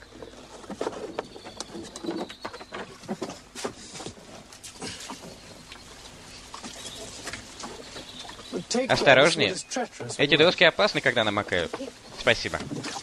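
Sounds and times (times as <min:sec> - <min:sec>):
wooden knocks and creaks of boat: 0:00.0 - 0:13.0.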